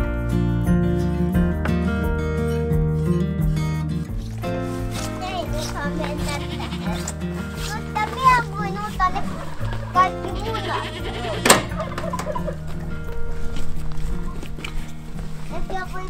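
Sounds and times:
background music: 0:00.0 - 0:16.0
goats bleating: 0:05.6 - 0:07.2, 0:09.1 - 0:11.7
barn door latch click: 0:11.4 - 0:11.8.

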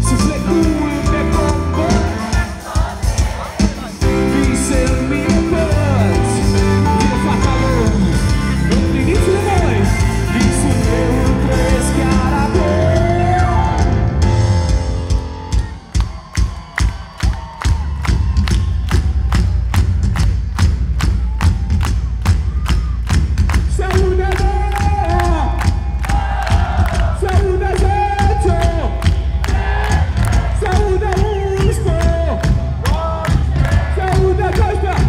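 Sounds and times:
live pop-rock band: 0:00.0 - 0:35.0
voices singing: 0:00.6 - 0:07.9, 0:09.0 - 0:13.7
audience clapping along: 0:15.8 - 0:35.0.

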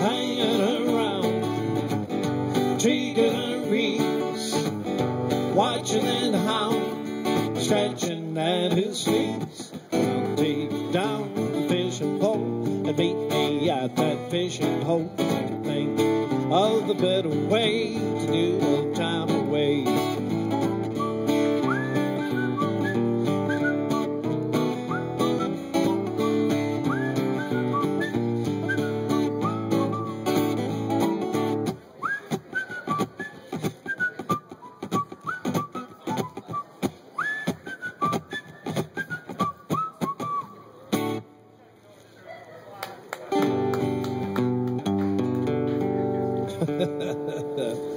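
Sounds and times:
strummed acoustic guitar: 0:00.0 - 0:41.3, 0:43.4 - 0:47.9
man whistling melody: 0:20.5 - 0:40.8.

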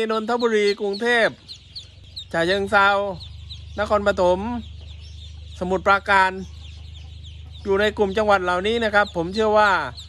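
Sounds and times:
ducklings peeping: 0:00.0 - 0:10.0.

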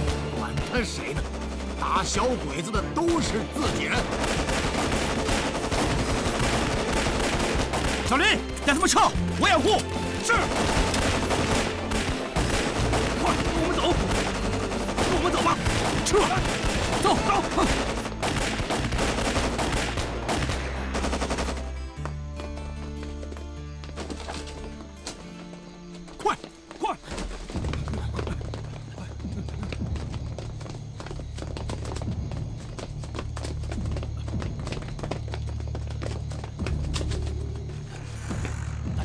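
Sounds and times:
rapid gunfire: 0:00.0 - 0:08.7, 0:10.2 - 0:21.8
low dramatic music: 0:00.0 - 0:39.0.

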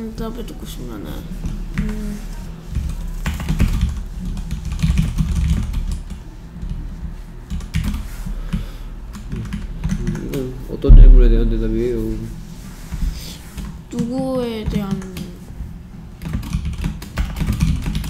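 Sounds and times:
computer keyboard typing: 0:03.2 - 0:06.1, 0:16.2 - 0:18.0.

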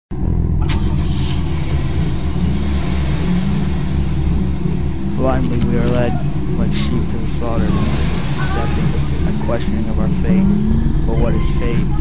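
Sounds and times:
loud low rumble: 0:00.1 - 0:12.0
man speaking: 0:05.1 - 0:12.0.

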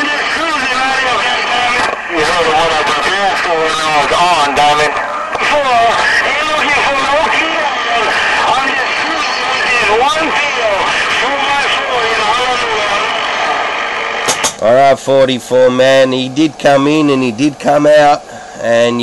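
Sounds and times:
voice over radio speaker: 0:00.0 - 0:13.7, 0:14.3 - 0:19.0
radio static hiss: 0:00.0 - 0:19.0.

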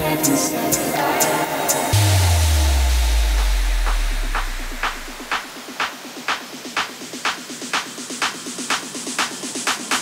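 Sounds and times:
house music: 0:00.0 - 0:10.0
deep sub-bass boom: 0:01.9 - 0:05.6
clap-like percussion hits: 0:01.9 - 0:10.0.

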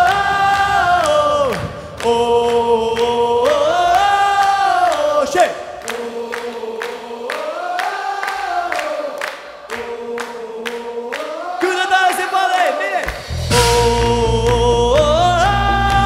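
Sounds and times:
audience clapping in time: 0:00.0 - 0:13.2, 0:14.0 - 0:16.0
audience singing together: 0:00.0 - 0:16.0
full band playing: 0:13.1 - 0:16.0.

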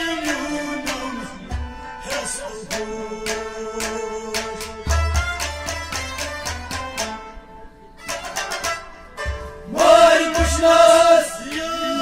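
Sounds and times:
plucked string instrument: 0:00.0 - 0:12.0
drum thumps: 0:04.3 - 0:07.2, 0:08.2 - 0:11.1.

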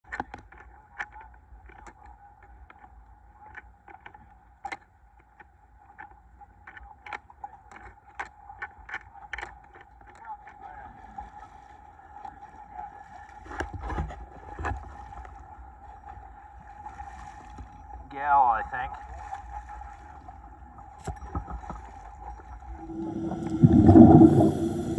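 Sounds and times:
boat engine whine: 0:22.6 - 0:24.9
low rumble: 0:22.6 - 0:24.9
wind gust on microphone: 0:22.8 - 0:24.9.

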